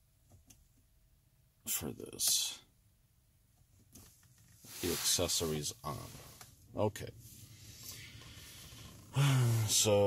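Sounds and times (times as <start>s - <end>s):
man speaking: 1.7s - 2.6s, 4.7s - 6.2s, 9.2s - 10.0s.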